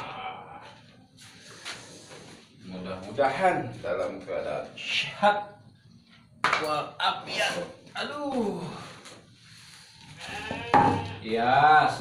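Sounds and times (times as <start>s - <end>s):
sheep bleating: 10.1s - 11.5s.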